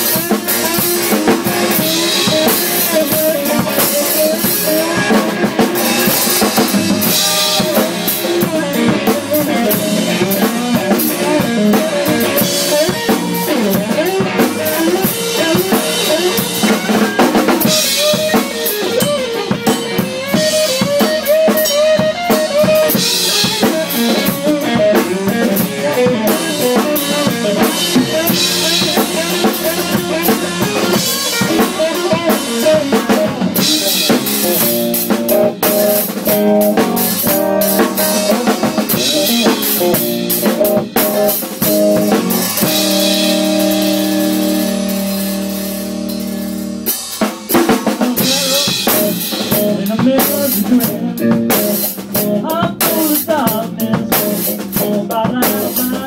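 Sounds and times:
drum kit groove: 0:00.0 - 0:56.0
electric guitar: 0:00.0 - 0:56.0.

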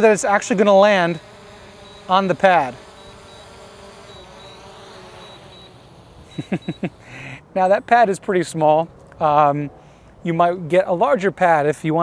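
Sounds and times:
drone propellers buzzing: 0:00.0 - 0:07.2.

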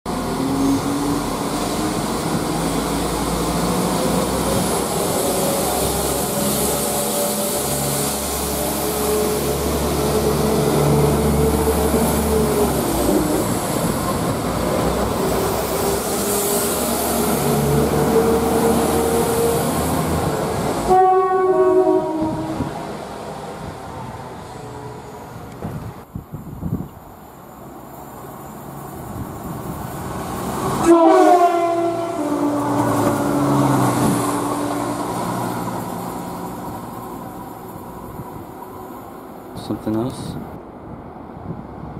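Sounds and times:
diesel train engine whine: 0:00.1 - 0:41.9
wheels rumbling on rail: 0:00.1 - 0:41.9
train horn: 0:20.8 - 0:22.8, 0:30.8 - 0:35.0.

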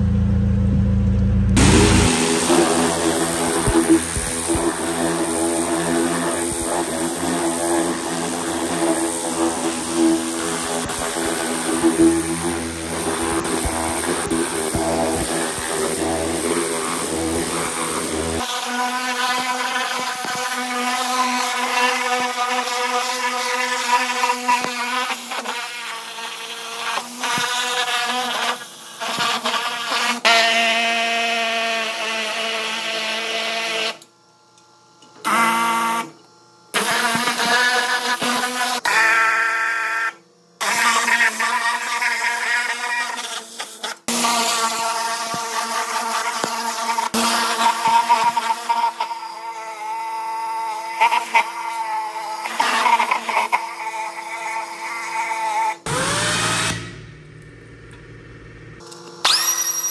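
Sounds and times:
low rumble: 0:00.0 - 0:04.8
pump hum: 0:00.0 - 0:18.4
pressure washer spraying water: 0:01.6 - 0:30.2.

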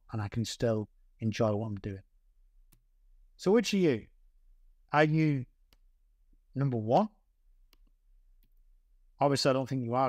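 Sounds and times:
man speaking: 0:00.0 - 0:02.0, 0:03.4 - 0:04.1, 0:04.9 - 0:05.5, 0:06.5 - 0:07.2, 0:09.2 - 0:10.0.

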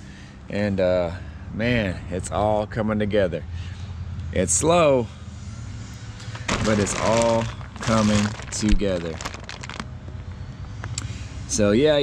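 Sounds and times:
rustles: 0:06.2 - 0:10.2.

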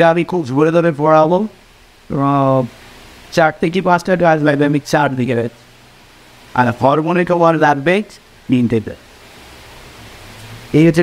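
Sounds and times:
man speaking: 0:00.0 - 0:05.6, 0:06.5 - 0:09.1, 0:10.7 - 0:11.0
low background hiss: 0:00.0 - 0:11.0.

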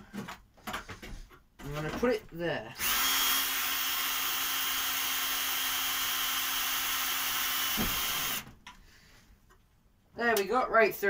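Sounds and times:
cordless drill drilling metal: 0:02.8 - 0:08.5.

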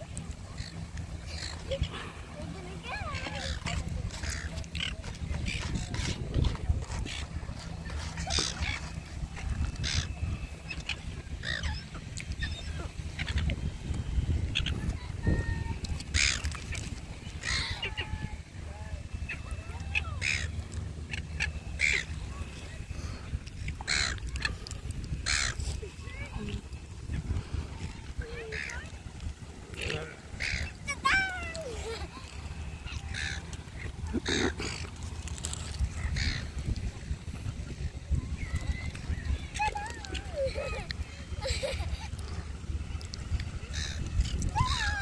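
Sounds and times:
wind rumbling on microphone: 0:00.0 - 0:45.0
gulls squawking: 0:00.1 - 0:29.1, 0:29.7 - 0:45.0.

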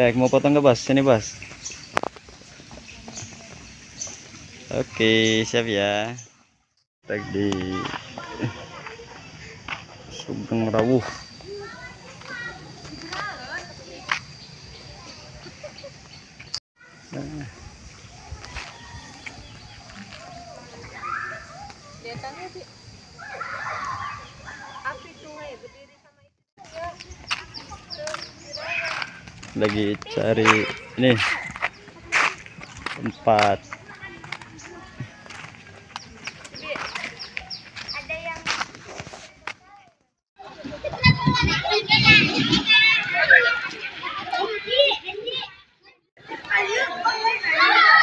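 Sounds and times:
children calling and chattering: 0:00.0 - 0:06.2, 0:07.0 - 0:48.0
people talking: 0:07.1 - 0:15.8, 0:23.5 - 0:38.6, 0:40.4 - 0:45.6, 0:46.2 - 0:48.0.

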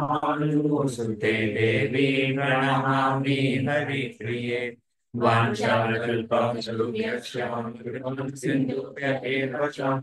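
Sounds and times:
man chanting prayers: 0:00.0 - 0:10.0.

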